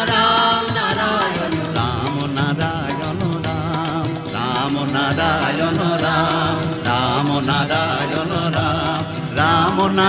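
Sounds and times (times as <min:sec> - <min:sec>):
devotional music: 0:00.0 - 0:10.0.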